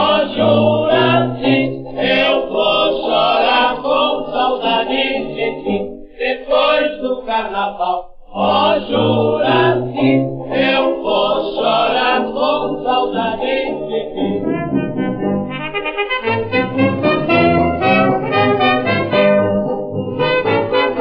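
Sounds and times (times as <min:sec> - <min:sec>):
old gramophone dance orchestra march: 0:10.6 - 0:21.0.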